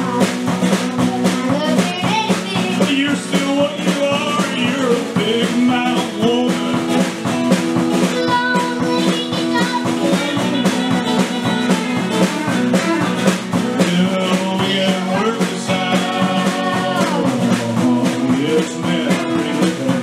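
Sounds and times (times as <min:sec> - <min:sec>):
drum kit: 0:00.0 - 0:20.0
electric guitar: 0:00.0 - 0:20.0
strummed acoustic guitar: 0:00.0 - 0:20.0.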